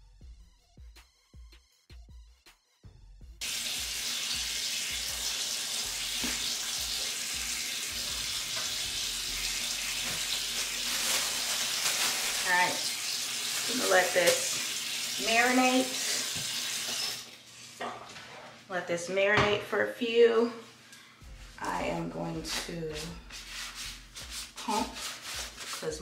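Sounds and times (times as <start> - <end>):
water running from a tap: 3.4 - 17.8.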